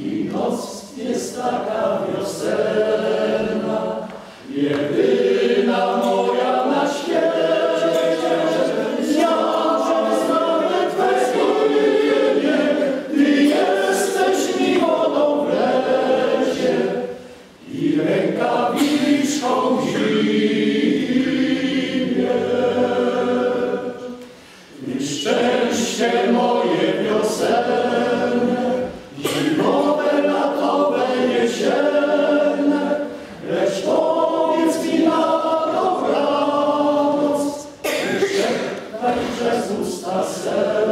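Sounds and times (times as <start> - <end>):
men's choir singing a cappella: 0.0 - 40.9.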